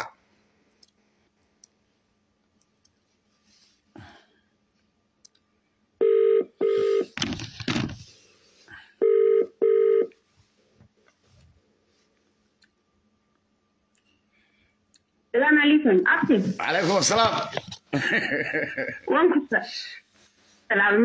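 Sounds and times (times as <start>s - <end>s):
telephone ringing: 6.0s - 7.2s, 9.0s - 10.1s.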